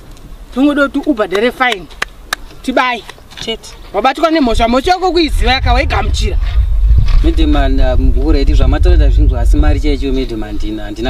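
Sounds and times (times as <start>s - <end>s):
voices speaking: 0.5s - 8.1s.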